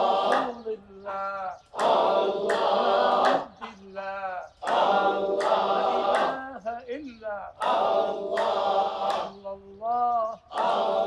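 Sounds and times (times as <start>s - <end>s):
men chanting together: 0.0s - 6.7s, 7.5s - 11.0s
single voice chanting: 0.0s - 11.0s.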